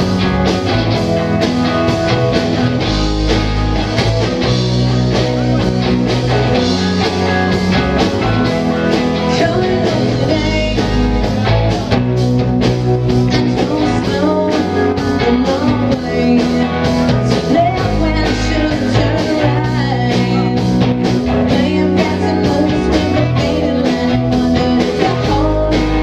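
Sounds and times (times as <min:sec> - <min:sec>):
rock band playing: 0:00.0 - 0:26.0
steady drumbeat: 0:00.0 - 0:26.0.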